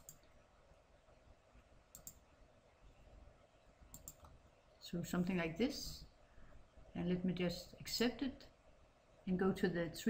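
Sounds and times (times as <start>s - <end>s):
computer mouse clicks: 0.0s - 0.4s, 1.9s - 2.2s, 3.9s - 4.4s.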